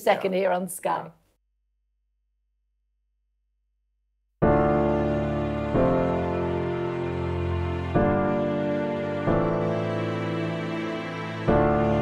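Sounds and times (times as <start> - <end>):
voice: 0.0 - 1.2.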